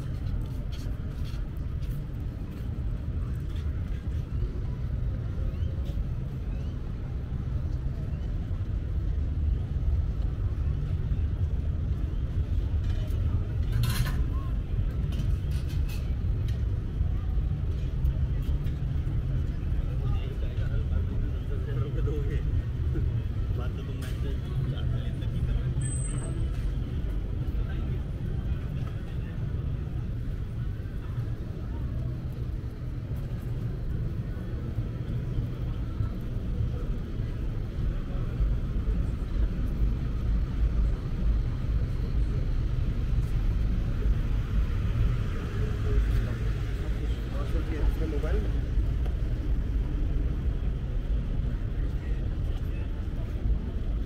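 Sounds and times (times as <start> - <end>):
low city rumble: 0.0 - 54.0
passers-by talking: 0.0 - 54.0.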